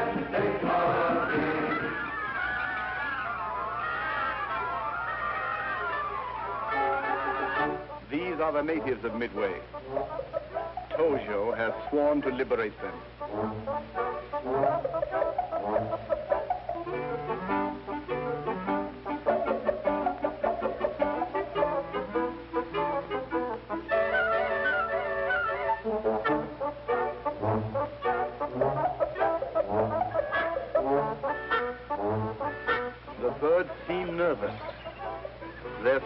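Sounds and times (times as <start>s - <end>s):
orchestral music led by brass: 0.0s - 36.0s.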